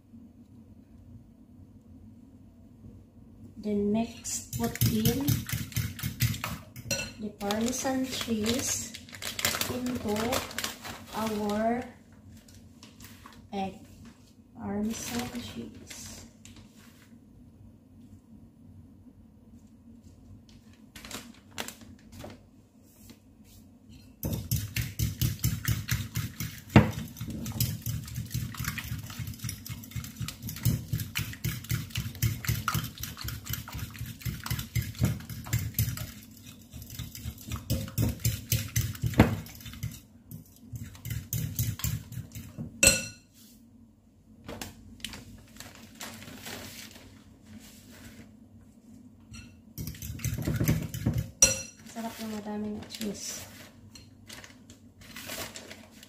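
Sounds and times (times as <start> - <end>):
fork whisking eggs in glass bowl: 4.3 - 8.9, 23.9 - 43.1, 49.4 - 52.3.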